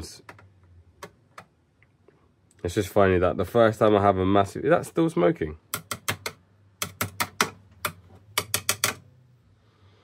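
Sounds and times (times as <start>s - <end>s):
screwdriver clicking on plastic: 5.7s - 9.0s.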